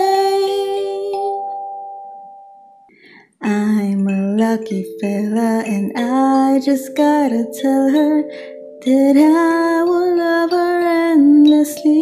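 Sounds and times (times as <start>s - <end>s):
kalimba notes ringing: 3.5s - 12.0s.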